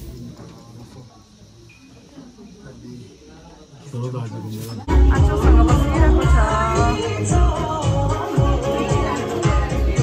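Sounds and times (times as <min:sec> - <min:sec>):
indistinct voices: 0:00.0 - 0:10.0
loud music with bass beat: 0:04.9 - 0:10.0.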